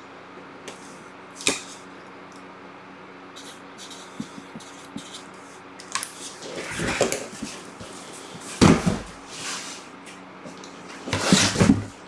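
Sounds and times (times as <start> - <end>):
cardboard boxes rustling and scraping: 6.2 - 12.0.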